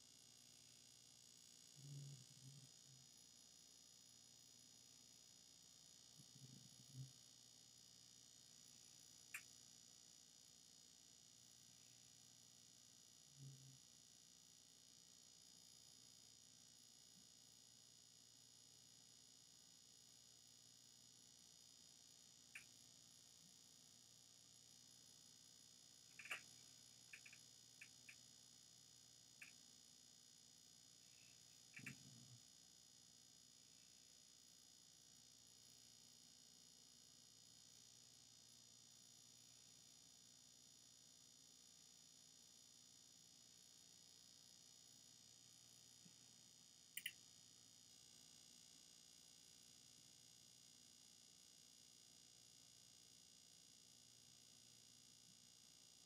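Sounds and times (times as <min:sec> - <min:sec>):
faint hiss and low hum: 0:00.0 - 0:48.6
short faint clicks: 0:47.0 - 0:47.2.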